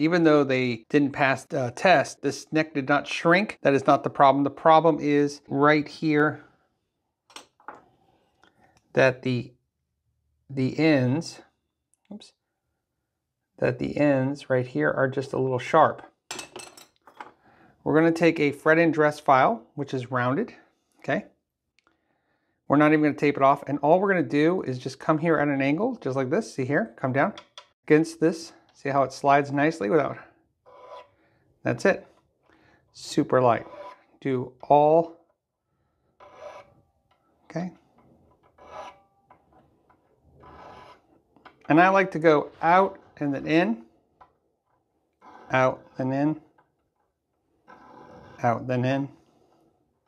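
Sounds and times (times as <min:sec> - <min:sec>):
file scraping guitar frets: 0:30.7 - 0:31.1, 0:33.5 - 0:34.2, 0:36.2 - 0:36.8, 0:38.3 - 0:39.6, 0:40.4 - 0:41.1, 0:45.2 - 0:46.0
hand tool scraping metal frets: 0:36.2 - 0:36.8, 0:38.0 - 0:41.1.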